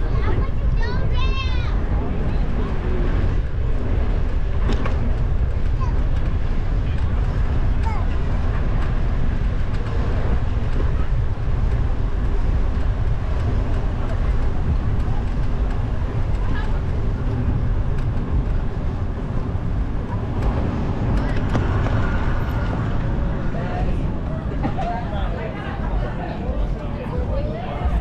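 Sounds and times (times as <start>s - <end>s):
faint voices of passers-by: 0.0s - 28.0s
wind and bicycle riding noise: 0.0s - 28.0s.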